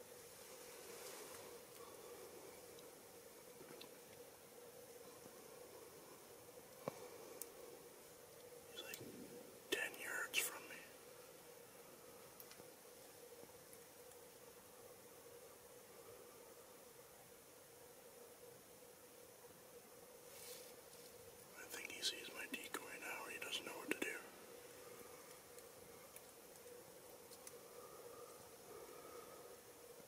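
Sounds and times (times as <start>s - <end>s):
person whispering: 8.8s - 9.0s, 9.7s - 11.0s, 21.5s - 24.4s.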